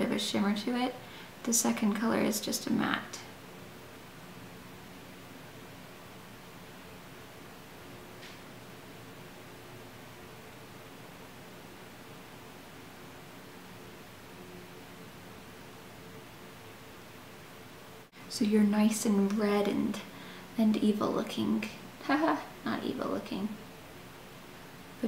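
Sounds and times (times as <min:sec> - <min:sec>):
faint hum: 0:00.0 - 0:25.0
low hiss: 0:00.0 - 0:25.0.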